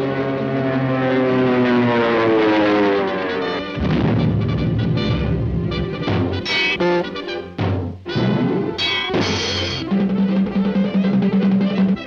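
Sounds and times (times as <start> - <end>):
orchestral cartoon music: 3.2 - 11.8.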